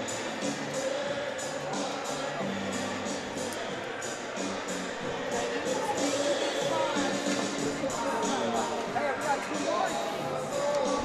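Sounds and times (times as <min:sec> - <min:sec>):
music over arena loudspeakers: 0:00.0 - 0:11.0.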